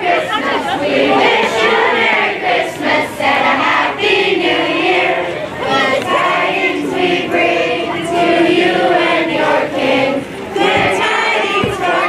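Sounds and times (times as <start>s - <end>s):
children singing a carol: 0.0s - 12.0s.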